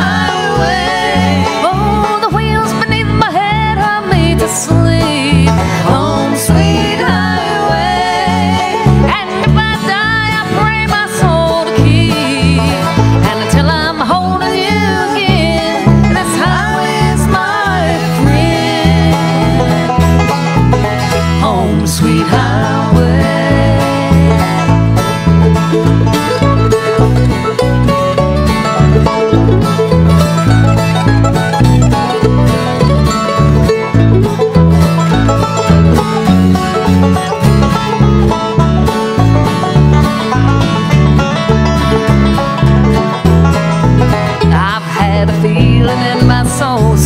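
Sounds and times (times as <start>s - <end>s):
banjo: 0.0s - 47.0s
bluegrass band playing: 0.0s - 47.0s.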